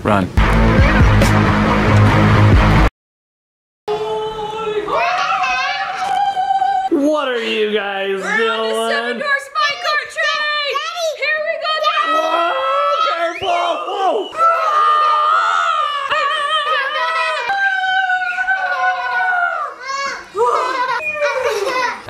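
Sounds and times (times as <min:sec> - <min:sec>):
children squealing and shrieking: 0:03.9 - 0:06.9, 0:09.6 - 0:22.0.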